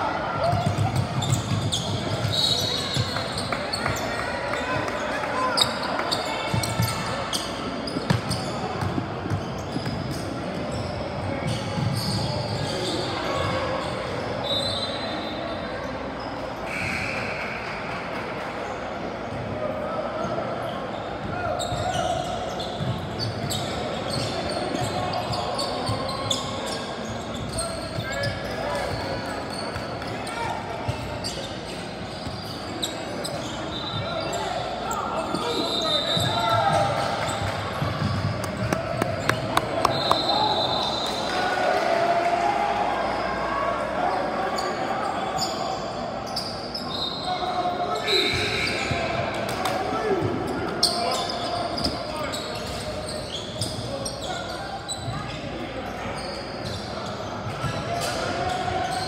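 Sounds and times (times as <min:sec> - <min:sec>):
players and spectators calling out: 0:00.0 - 0:59.0.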